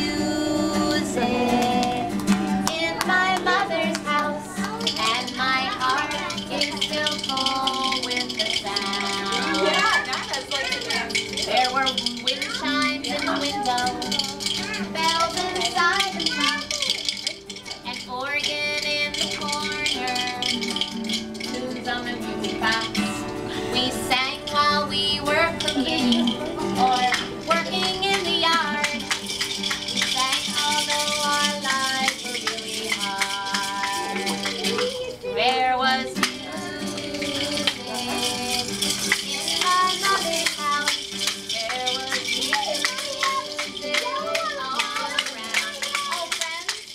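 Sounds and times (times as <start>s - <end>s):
acoustic guitar: 0.0s - 46.9s
children singing and calling: 0.0s - 46.9s
steady rhythmic rattle: 0.0s - 46.9s.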